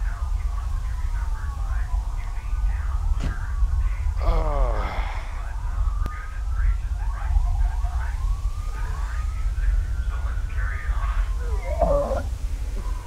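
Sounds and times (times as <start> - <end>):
steady low rumble: 0.0 - 13.0
siren wailing: 7.0 - 13.0.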